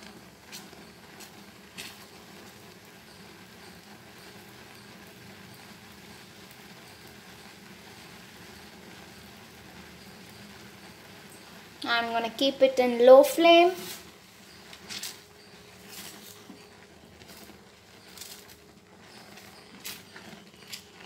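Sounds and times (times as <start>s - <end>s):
custard simmering and bubbling: 0.0s - 21.0s.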